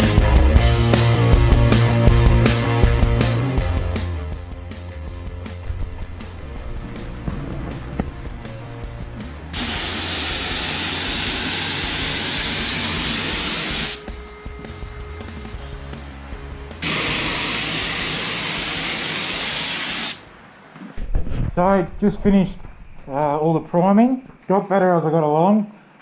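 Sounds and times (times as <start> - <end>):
background music: 0.0 - 18.8
spray gun hissing: 9.5 - 14.1, 16.8 - 20.2.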